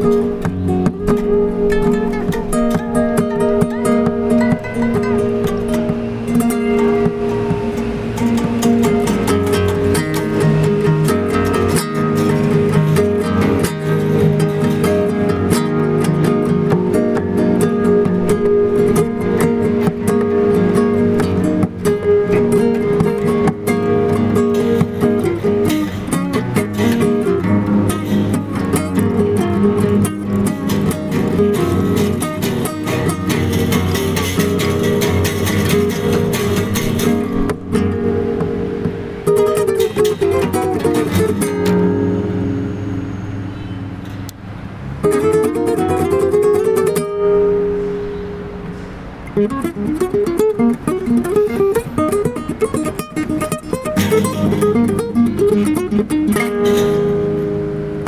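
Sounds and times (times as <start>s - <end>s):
acoustic guitar music: 0.0s - 58.0s.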